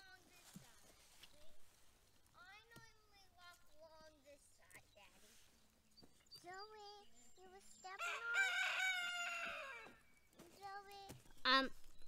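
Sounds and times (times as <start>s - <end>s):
rooster crowing: 8.0s - 10.0s.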